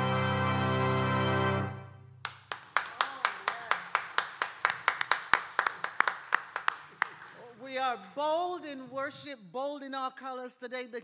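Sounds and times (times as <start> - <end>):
hands clapping in applause: 2.2 - 7.4.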